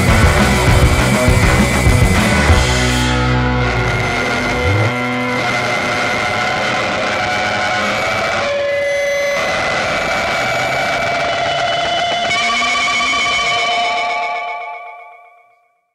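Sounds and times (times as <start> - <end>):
rock band playing: 0.0 - 8.5
electric guitar tones ringing: 0.0 - 15.9.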